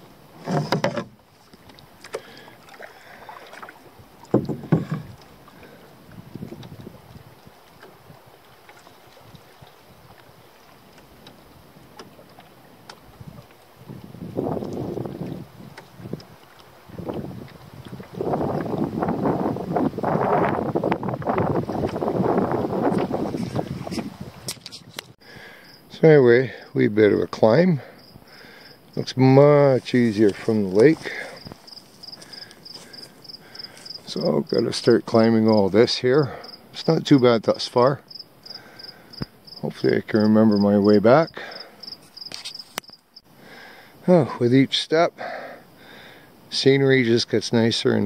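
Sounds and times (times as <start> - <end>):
water splashing and gurgling: 0.0 - 25.3, 28.3 - 37.0
water lapping at canoe hull: 0.0 - 25.8, 26.6 - 46.6.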